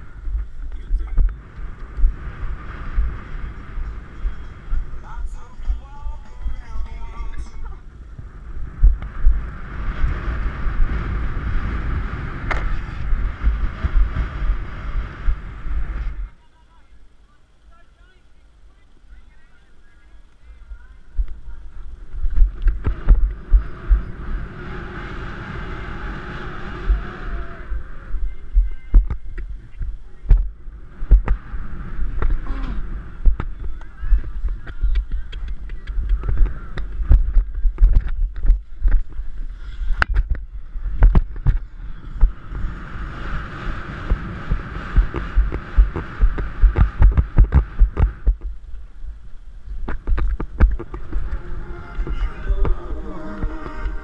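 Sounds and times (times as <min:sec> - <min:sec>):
rushing noise: 0:00.0 - 0:07.0, 0:07.8 - 0:16.4, 0:21.1 - 0:34.8, 0:35.9 - 0:54.0.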